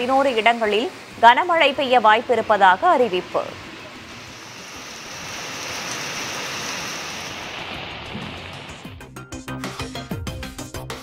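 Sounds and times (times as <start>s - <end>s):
heavy rain falling: 0.0s - 9.1s.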